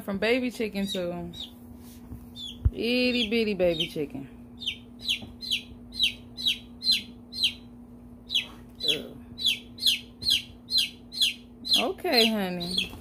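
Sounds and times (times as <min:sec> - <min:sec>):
chick peeping: 0:02.3 - 0:13.0.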